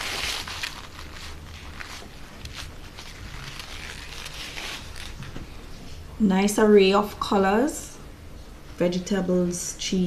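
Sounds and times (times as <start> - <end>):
rustling and crackling handling noise: 0.0 - 6.0
low steady background rumble: 0.0 - 10.0.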